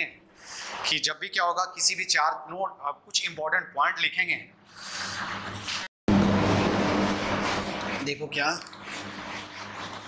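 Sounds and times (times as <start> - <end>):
duster scrubbing a whiteboard: 4.8 - 10.0.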